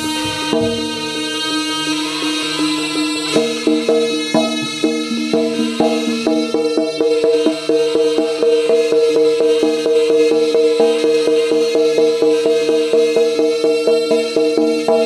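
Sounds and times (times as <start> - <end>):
drums and percussion: 0.0 - 15.0
steady held tones: 0.0 - 15.0.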